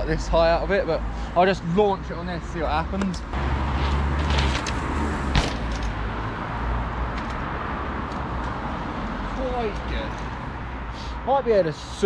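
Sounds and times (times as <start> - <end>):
passing road traffic: 0.0 - 12.0
bike hitting a lip knock: 5.3 - 5.6.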